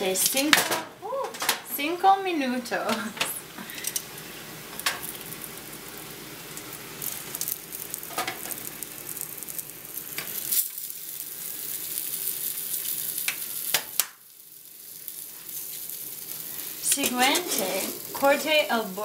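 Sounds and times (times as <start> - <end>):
food sizzling in hot oil: 0.0 - 0.7, 3.6 - 19.0
metal tongs clicking on pan: 16.9 - 17.6.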